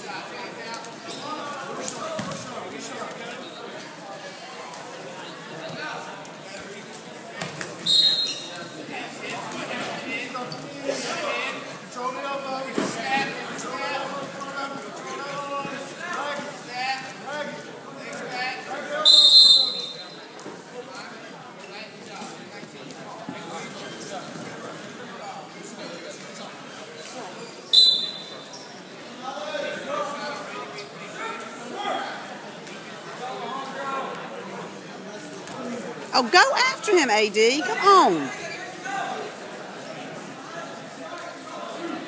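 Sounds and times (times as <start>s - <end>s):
faint crowd chatter: 0.0s - 42.0s
referee's whistle blast: 19.1s - 20.0s
spectators' voices echoing: 36.2s - 38.4s.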